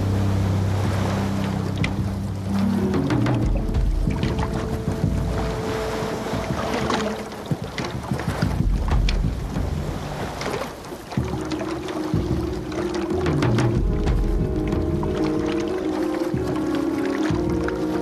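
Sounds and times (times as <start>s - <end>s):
soundtrack music with held notes: 0.0s - 18.0s
steady rushing noise: 0.0s - 18.0s.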